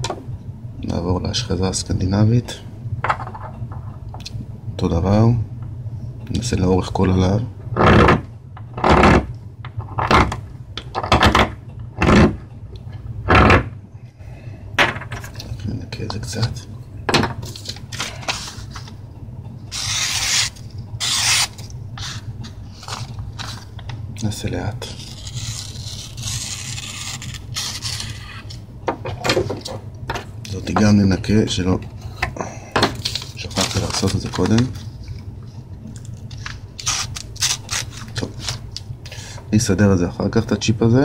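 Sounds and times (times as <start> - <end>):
low hum: 0.0 - 40.9
knife scraping bone: 19.7 - 23.5, 24.8 - 28.6, 36.8 - 38.6.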